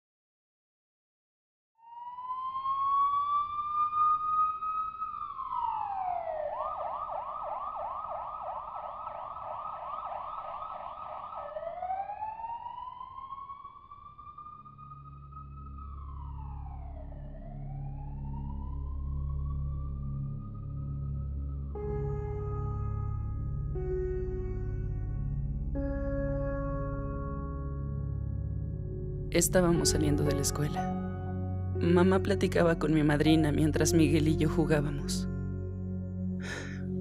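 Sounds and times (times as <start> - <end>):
emergency vehicle siren: 1.8 - 32.9
low drone: 2.2 - 37.0.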